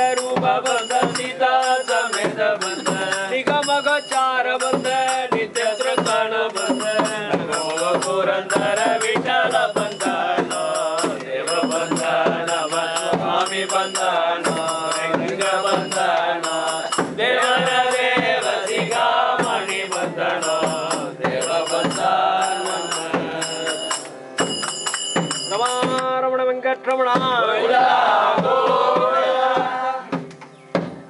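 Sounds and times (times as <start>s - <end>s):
group chanting a hymn: 0.0s - 24.6s, 27.1s - 30.2s
steady percussion beat: 0.0s - 26.1s, 27.1s - 31.0s.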